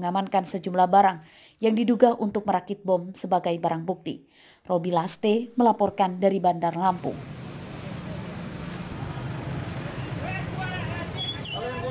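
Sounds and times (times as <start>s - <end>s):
people talking: 0.0s - 7.2s, 10.0s - 11.9s
motor scooter engines running: 6.9s - 11.9s.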